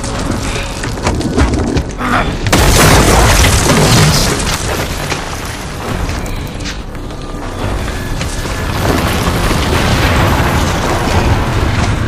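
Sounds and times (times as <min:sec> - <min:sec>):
rock crashing: 0:00.0 - 0:06.3, 0:08.2 - 0:12.0.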